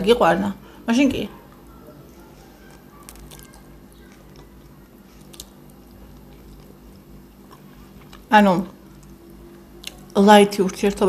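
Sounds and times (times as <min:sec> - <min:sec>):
low steady hum: 0:00.0 - 0:11.0
person chewing food: 0:01.5 - 0:10.2.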